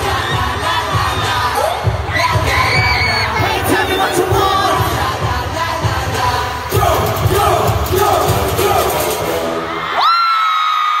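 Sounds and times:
live concert music with bass: 0.0 - 10.2
crowd cheering: 9.5 - 11.0.

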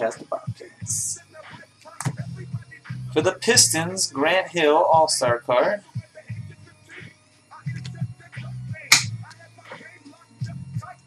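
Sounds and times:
background music: 0.0 - 11.0
cards slapping on table: 8.9 - 9.2.

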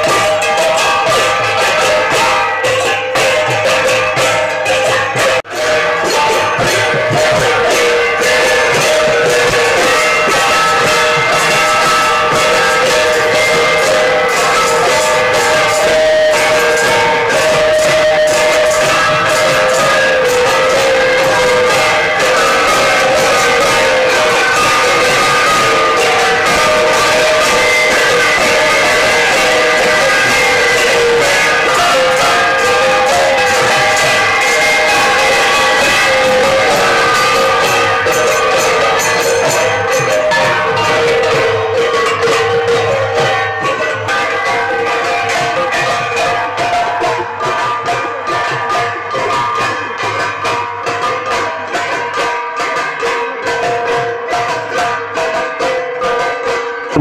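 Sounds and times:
metal gongs beaten with sticks: 0.0 - 57.0
small hand cymbals: 0.0 - 57.0.

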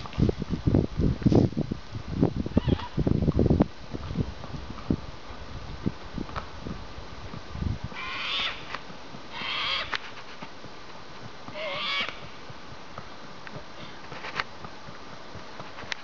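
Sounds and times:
horse hooves on paved road: 0.0 - 16.0.

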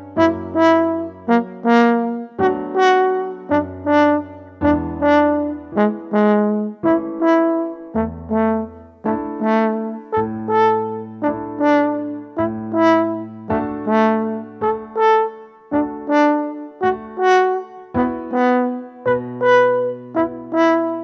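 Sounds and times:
french horn playing slow melody: 0.0 - 21.0
piano bass notes: 0.0 - 21.0.

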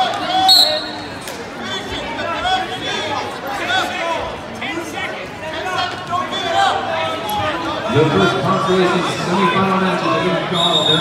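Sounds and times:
spectators shouting and chattering: 0.0 - 11.0
referee's whistle: 0.4 - 1.1, 10.5 - 11.0.

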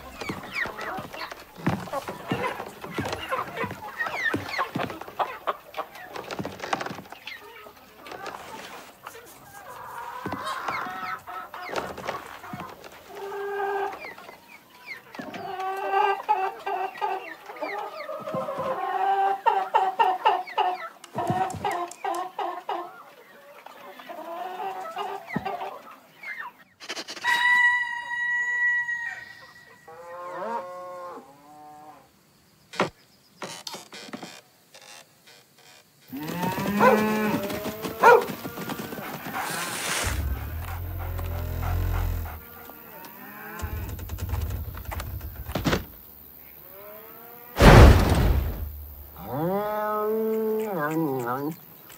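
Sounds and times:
cattle mooing: 36.1 - 38.2, 39.5 - 44.1, 49.2 - 50.6.

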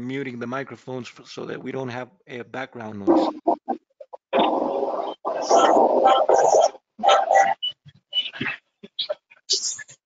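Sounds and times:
harsh microphone noise: 1.1 - 9.8.

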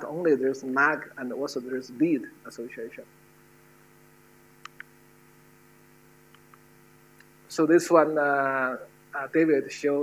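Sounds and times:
faint electrical mains hum: 0.0 - 10.0
faint clicks: 4.6 - 5.0.

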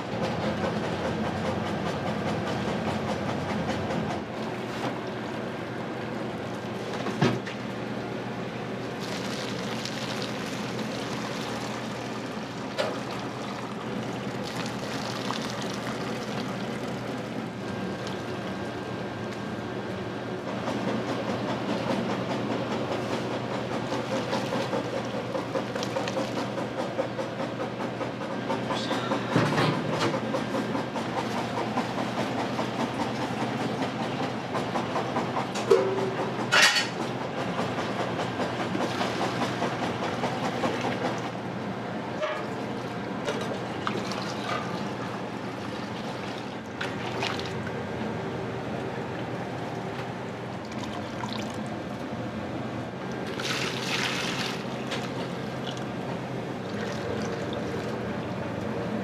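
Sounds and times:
liquid pouring and splashing: 8.9 - 18.4, 43.8 - 47.7, 50.6 - 51.8, 53.2 - 56.0, 56.6 - 58.0.

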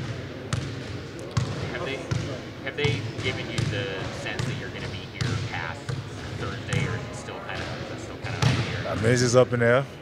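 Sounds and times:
basketballs bouncing on hard court: 0.0 - 9.0.

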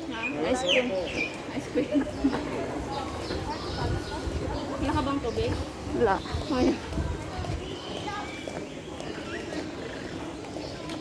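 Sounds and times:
faint background voices: 0.0 - 11.0
high bird calls: 7.6 - 11.0.

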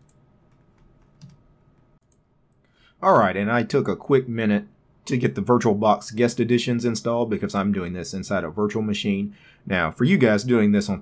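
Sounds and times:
computer keyboard clicks: 0.0 - 1.4.

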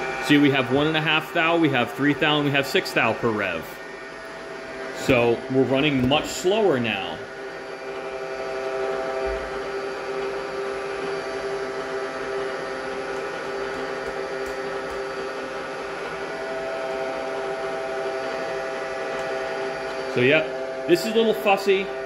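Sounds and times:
milling machine whirring: 0.0 - 22.0.

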